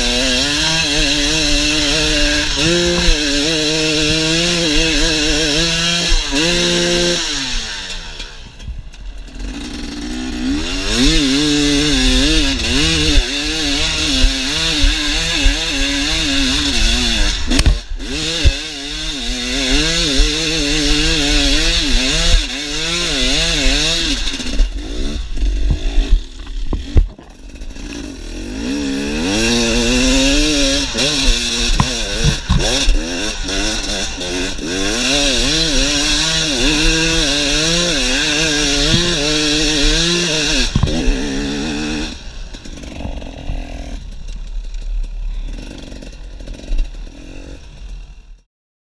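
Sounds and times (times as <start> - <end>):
motorcycle engine revving: 0.0 - 48.5.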